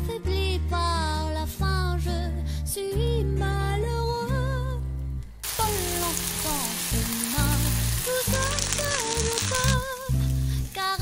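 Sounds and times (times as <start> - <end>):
background music: 0.0 - 11.0
liquid pouring: 5.4 - 11.0
rice sizzling in a frying pan: 5.4 - 11.0.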